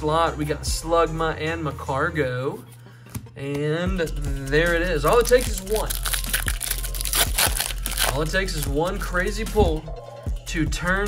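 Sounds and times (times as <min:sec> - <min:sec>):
foil wrapper crinkling and tearing: 0:05.0 - 0:08.7.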